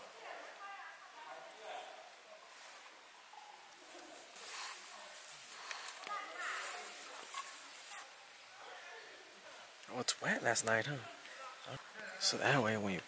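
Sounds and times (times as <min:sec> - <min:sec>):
cord and jacket rustling: 0:00.0 - 0:13.0
faint background voices: 0:00.0 - 0:13.0.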